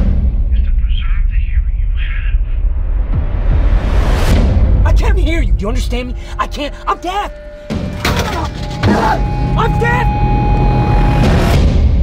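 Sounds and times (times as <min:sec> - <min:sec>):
dramatic trailer music: 0:00.0 - 0:12.0
steady high tone: 0:06.4 - 0:11.5.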